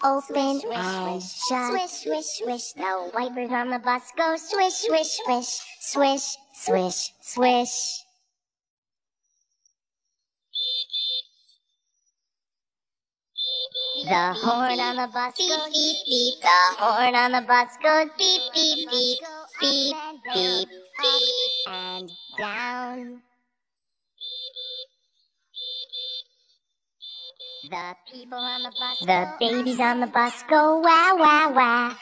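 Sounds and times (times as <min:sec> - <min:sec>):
cartoon bus horn beeping: 0:13.5 - 0:16.8, 0:18.0 - 0:23.0, 0:27.2 - 0:29.9
bus horn beeping: 0:14.0 - 0:15.1.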